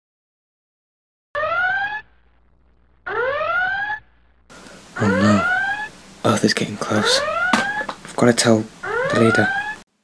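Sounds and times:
electronic alarm whoops: 1.4 - 2.1, 3.1 - 4.0, 5.0 - 6.0, 6.9 - 7.9, 8.8 - 9.8.

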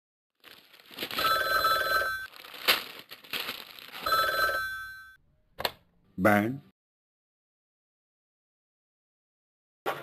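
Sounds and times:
telephone bell ringing: 1.2 - 2.3, 4.0 - 5.2.

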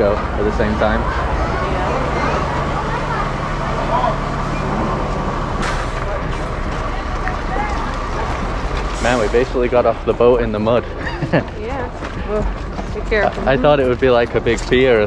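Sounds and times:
babble of voices: 0.0 - 15.0
lorry engines rumbling: 0.0 - 15.0.

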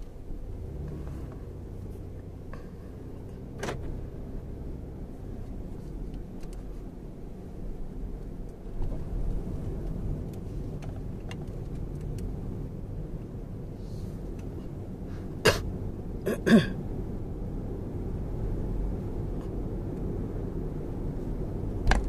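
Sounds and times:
car cabin road rumble: 0.0 - 22.0
person clearing throat: 15.4 - 15.7, 16.3 - 16.8.

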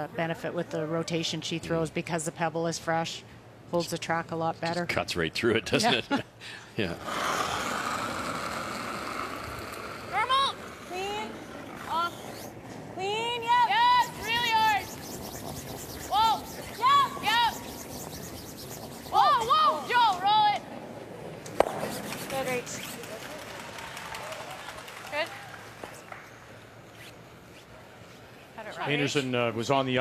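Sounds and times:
brooms hissing on ice: 13.7 - 20.2.

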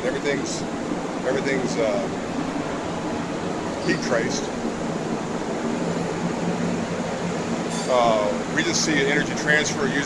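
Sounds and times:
fan-like mechanical hum: 0.0 - 10.0
low drone: 0.0 - 10.0.

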